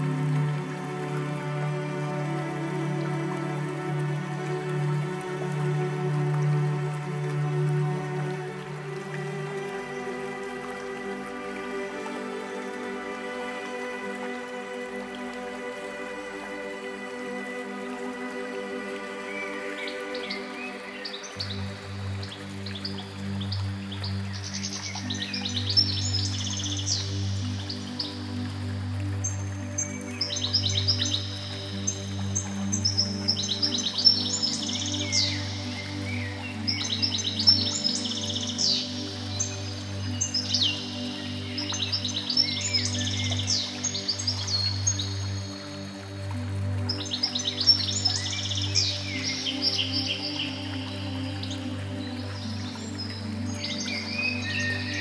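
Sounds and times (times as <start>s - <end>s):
ambient music with low chords: 0.0s - 55.0s
songbirds chirping and trilling: 0.0s - 55.0s.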